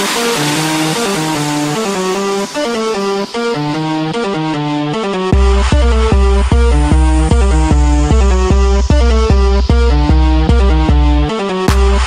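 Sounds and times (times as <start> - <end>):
hissing noise sweep: 0.0 - 11.3
plucked synth lead melody: 3.6 - 11.3.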